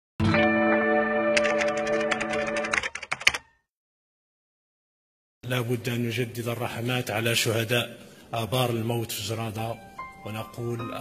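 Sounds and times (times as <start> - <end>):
held musical chord: 0.2 - 2.7.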